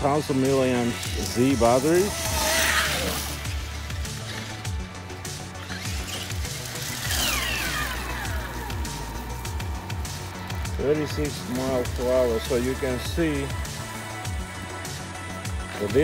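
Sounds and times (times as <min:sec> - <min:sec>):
electric motor whine: 0:00.0 - 0:15.9
background music: 0:00.0 - 0:16.0.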